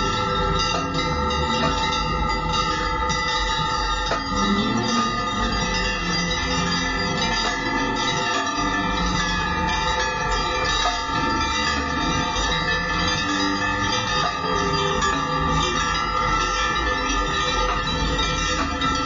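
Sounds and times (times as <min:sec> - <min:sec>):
music: 0:00.0 - 0:19.0
ritual bells ringing: 0:00.0 - 0:19.0.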